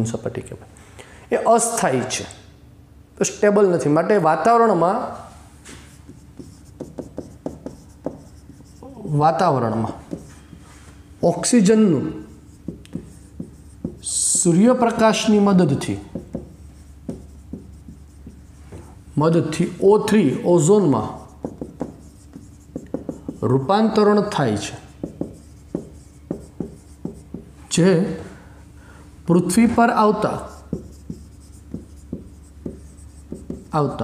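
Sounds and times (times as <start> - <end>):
marker writing on whiteboard: 5.2 - 27.6, 29.7 - 34.0.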